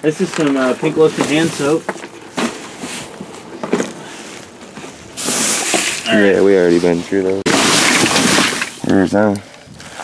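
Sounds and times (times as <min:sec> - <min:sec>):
garbage rustling in a dumpster: 0:00.0 - 0:06.1, 0:06.9 - 0:08.8.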